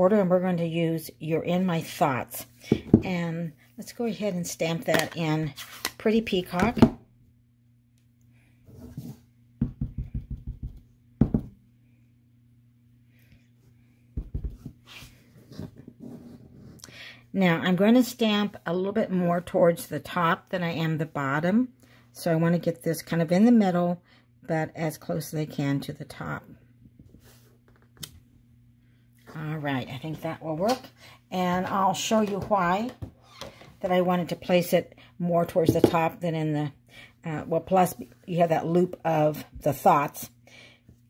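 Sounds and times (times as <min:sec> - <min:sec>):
low room hum: 0:00.0 - 0:41.0.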